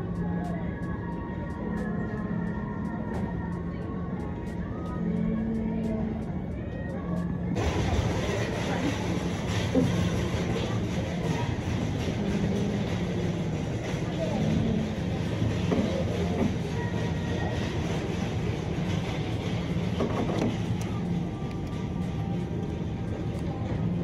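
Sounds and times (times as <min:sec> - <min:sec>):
indistinct voices: 0:00.0 - 0:24.0
low rumbling hum: 0:00.0 - 0:24.0.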